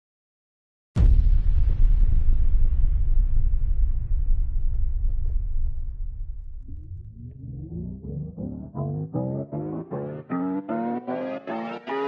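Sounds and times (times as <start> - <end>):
deep boom impact: 1.0 - 9.3
plucked melody: 7.1 - 12.0.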